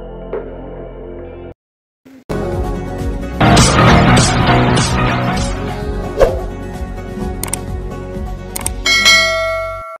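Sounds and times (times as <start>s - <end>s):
background music: 0.0s - 10.0s
notification bell ding: 8.9s - 10.0s.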